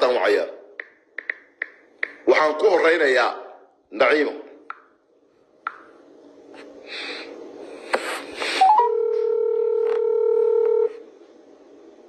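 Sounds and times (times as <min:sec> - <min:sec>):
steady telephone tone: 0:08.6 - 0:11.0.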